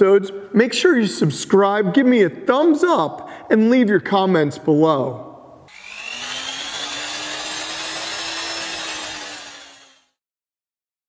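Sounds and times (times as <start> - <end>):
hiss of wood cutting: 5.7 - 10.2
router spindle whine: 5.7 - 10.2.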